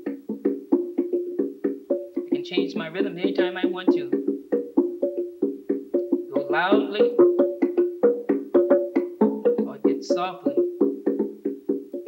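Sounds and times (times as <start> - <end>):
wooden percussion struck with mallets: 0.0 - 12.0.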